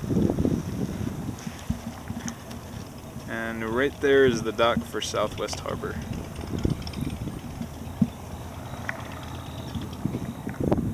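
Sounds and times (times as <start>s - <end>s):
water lapping against kayak: 0.0s - 10.9s
wind rumbling on microphone: 0.0s - 10.9s.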